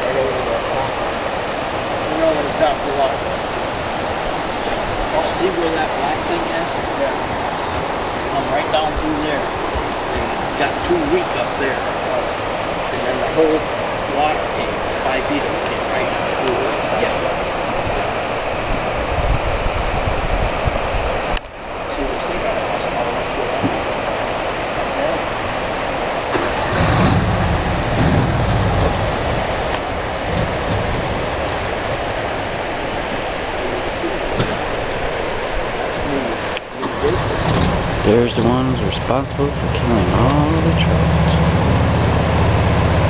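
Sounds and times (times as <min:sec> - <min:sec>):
river water rushing: 0:00.0 - 0:43.0
deep rumble: 0:26.2 - 0:34.8, 0:36.8 - 0:43.0.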